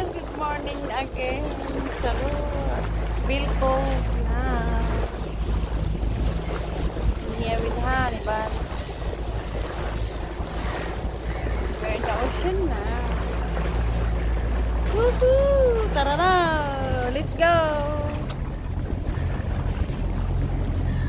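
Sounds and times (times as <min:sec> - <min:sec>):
outboard motor running: 0:00.0 - 0:21.0
water rushing past: 0:00.0 - 0:21.0
wind buffeting microphone: 0:00.0 - 0:21.0.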